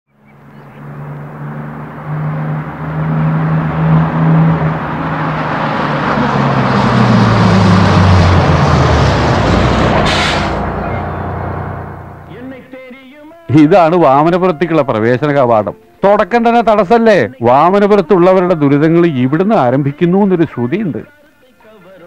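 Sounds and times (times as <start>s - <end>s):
bus engine: 0.1s - 12.6s
air brakes hissing: 9.5s - 12.2s.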